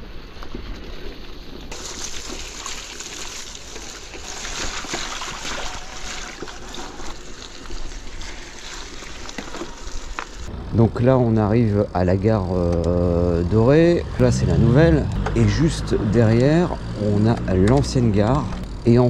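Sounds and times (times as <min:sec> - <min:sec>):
bike tyres rolling on muddy path: 0:00.0 - 0:19.0
mud squelching and splashing: 0:00.5 - 0:10.5.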